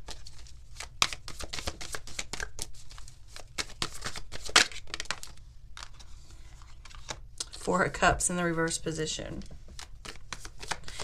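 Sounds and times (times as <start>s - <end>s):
cards being shuffled: 0.0s - 7.6s, 9.4s - 11.0s.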